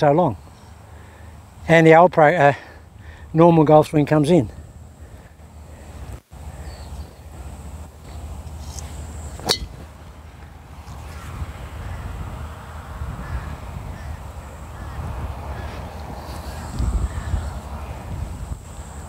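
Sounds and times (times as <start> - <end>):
wind rumbling on microphone: 4.4 - 19.0
golf club striking ball: 9.4 - 9.8.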